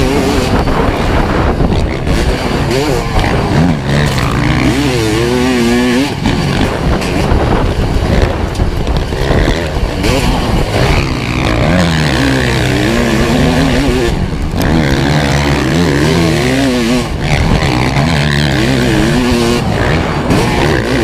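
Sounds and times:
motocross bike engine revving: 0.0 - 21.0.

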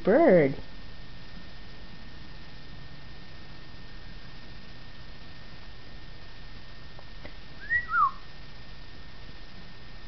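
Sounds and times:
two-note whistle: 7.6 - 8.2.

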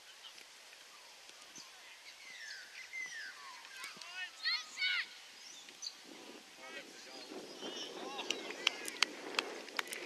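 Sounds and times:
birds whistling falling notes: 1.6 - 4.0.

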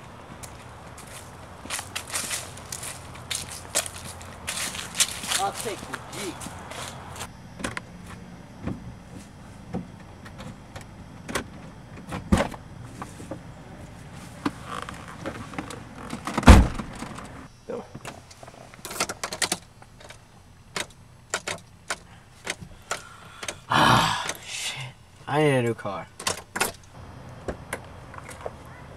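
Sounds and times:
car door opening and shutting: 9.7 - 12.6, 14.4 - 18.1
heavy car door slam: 16.4 - 17.1.

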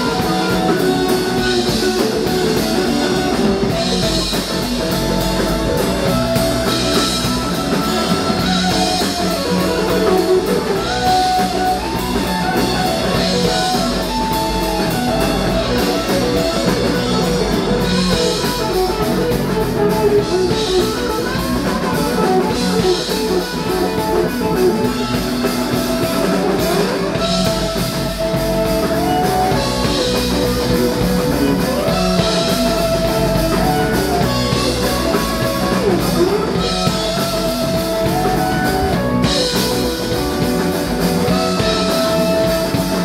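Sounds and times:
bass guitar: 0.0 - 43.0
drum kit: 0.0 - 43.0
electric guitars: 0.0 - 43.0.

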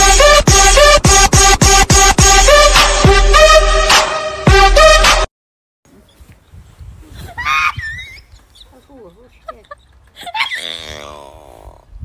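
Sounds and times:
woman moaning: 10.2 - 11.9.

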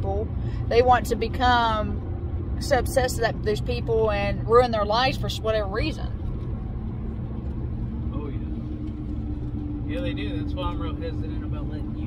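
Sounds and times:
truck engine and road rumble: 0.0 - 12.0.

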